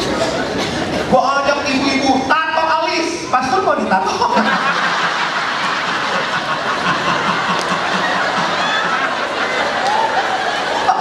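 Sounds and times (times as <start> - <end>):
audience laughing: 0.0 - 1.1, 4.0 - 11.0.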